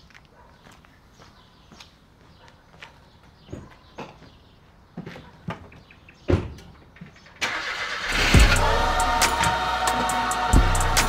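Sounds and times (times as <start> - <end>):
car engine starting and running: 7.4 - 11.0.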